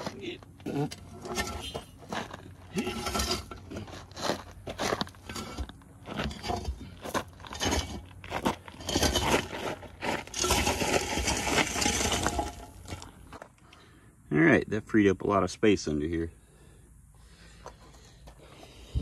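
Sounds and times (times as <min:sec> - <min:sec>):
metal parts dragged over gravel: 0:00.0 - 0:13.4
person crawling over gravel: 0:00.0 - 0:13.6.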